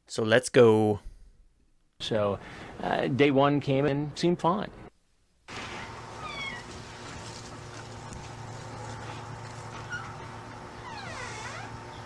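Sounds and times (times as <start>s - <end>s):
steady low hum: 5.5s - 12.0s
door hinges squeaking: 9.7s - 12.0s.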